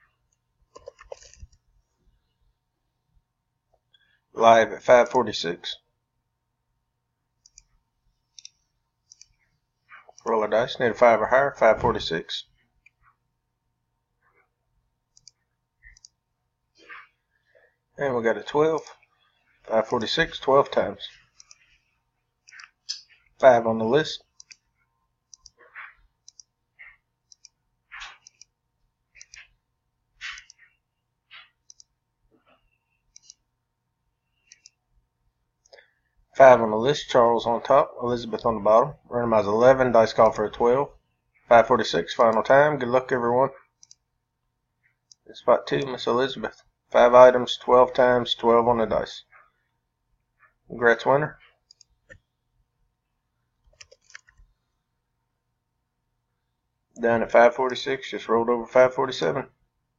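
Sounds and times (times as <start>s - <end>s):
computer mouse clicks: 0.3s - 1.6s, 7.4s - 7.7s, 8.3s - 10.2s, 15.1s - 16.2s, 21.4s - 21.8s, 22.4s - 23.3s, 24.2s - 24.6s, 25.3s - 28.6s, 29.2s - 29.6s, 30.2s - 31.9s, 32.5s - 33.4s, 34.3s - 34.8s, 43.6s - 44.0s, 51.6s - 52.3s, 53.6s - 54.5s.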